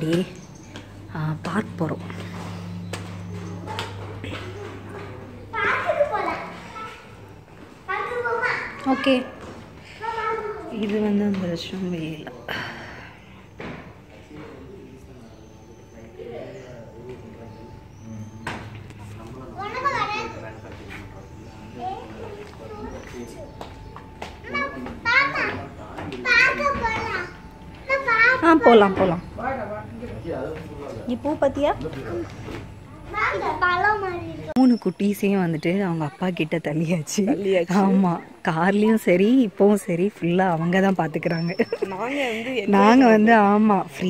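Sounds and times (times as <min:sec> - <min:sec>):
low steady hum: 0:00.0 - 0:44.0
young children calling out: 0:07.9 - 0:09.4.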